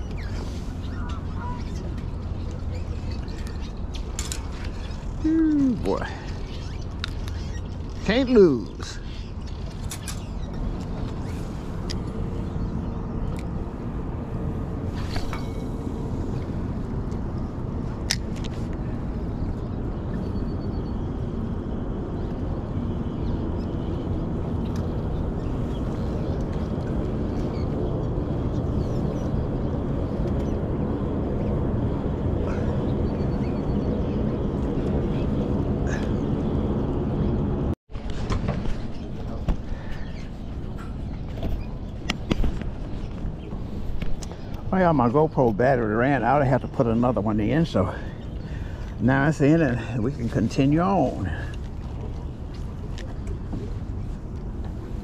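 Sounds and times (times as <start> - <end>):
wind rumble on microphone: 0.0 - 55.0.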